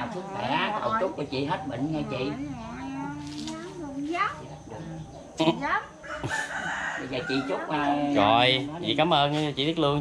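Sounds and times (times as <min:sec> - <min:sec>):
rooster crowing: 0:06.0 - 0:08.2.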